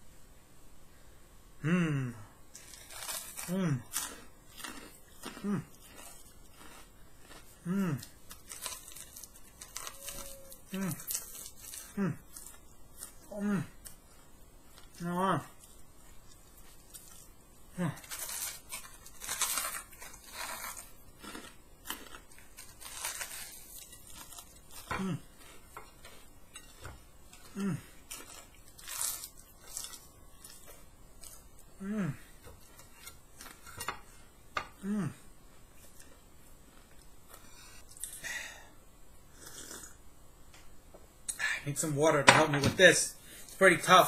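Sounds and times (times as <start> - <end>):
person humming mm: 1.6 - 2.4, 3.4 - 4.0, 5.2 - 5.8, 7.6 - 8.2, 9.9 - 11.2, 11.8 - 12.3, 13.2 - 13.8, 17.7 - 18.0, 24.8 - 25.4, 27.4 - 27.9, 31.8 - 32.4, 34.6 - 35.3
crunching fried batter being chewed: 2.6 - 34.0.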